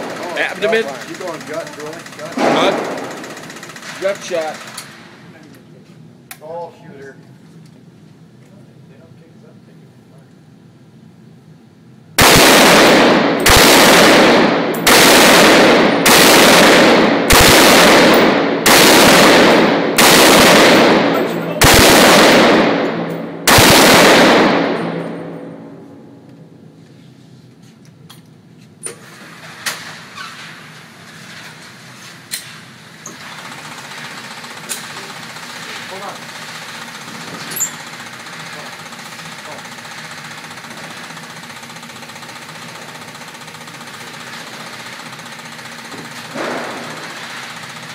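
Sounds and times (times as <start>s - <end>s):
rifle shots echoing indoors: 0.0s - 5.3s, 12.2s - 26.3s, 39.4s - 47.9s.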